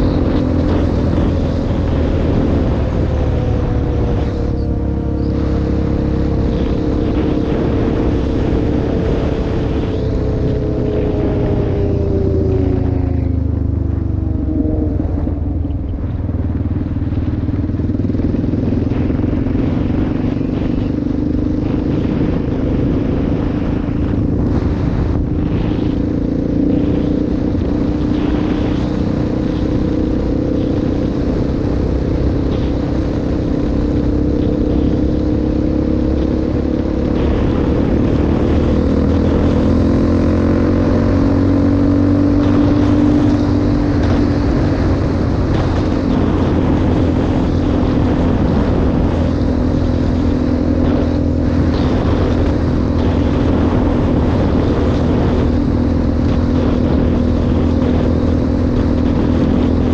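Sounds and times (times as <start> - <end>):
atv engine running: 0.0 - 59.9
road noise rushing: 0.0 - 59.9.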